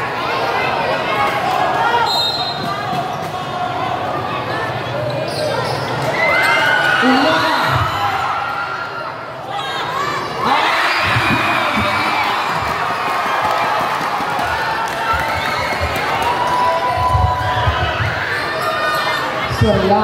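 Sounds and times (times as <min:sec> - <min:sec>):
crowd shouting and cheering: 0:00.0 - 0:20.0
basketball bouncing on court: 0:11.0 - 0:16.2.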